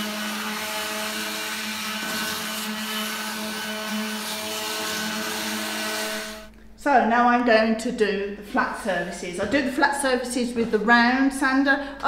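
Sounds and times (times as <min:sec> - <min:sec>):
sandpaper rasping on wood: 0:00.0 - 0:06.4
multi-tool buzzing hum: 0:00.0 - 0:06.5.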